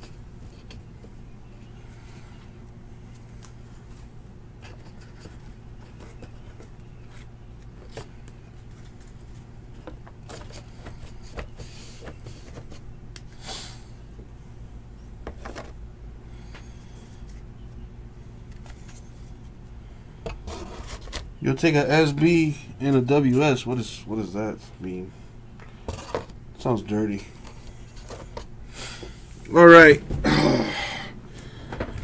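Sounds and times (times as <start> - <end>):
low electrical hum: 0.0 - 32.0
cards clicking and rustling: 4.6 - 12.8.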